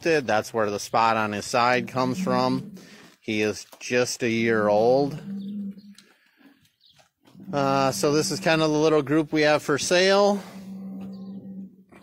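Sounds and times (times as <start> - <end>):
person speaking: 0.0 - 5.3, 7.4 - 10.7
low-pitched animal call: 1.6 - 3.1, 4.5 - 6.2, 7.3 - 9.0, 9.9 - 12.0.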